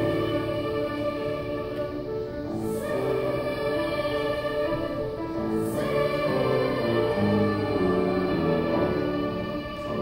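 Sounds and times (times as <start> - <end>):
girls' choir singing: 0.0 - 10.0.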